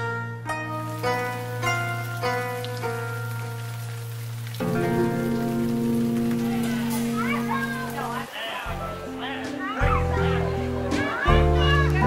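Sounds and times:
plucked string notes: 0:00.0 - 0:12.0
held chord: 0:00.1 - 0:12.0.

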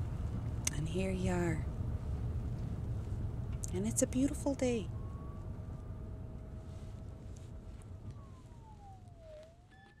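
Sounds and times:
low rumble of car: 0:00.0 - 0:10.0
faint siren wailing: 0:02.8 - 0:10.0.

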